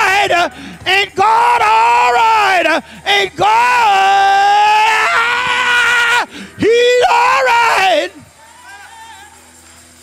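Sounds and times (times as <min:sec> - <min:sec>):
man shouting through speakers: 0:00.0 - 0:09.4.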